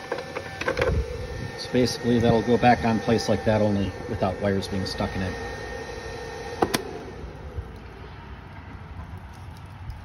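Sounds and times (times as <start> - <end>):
cooling fan hum winding down: 0.0 - 10.0.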